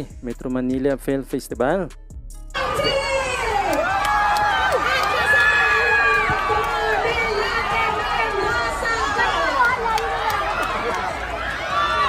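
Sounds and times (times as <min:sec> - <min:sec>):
crowd voices calling and talking: 0:02.6 - 0:12.0.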